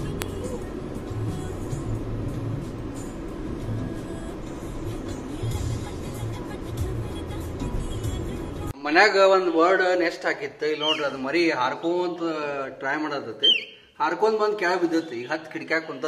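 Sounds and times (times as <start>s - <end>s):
car interior road rumble: 0.0s - 8.7s.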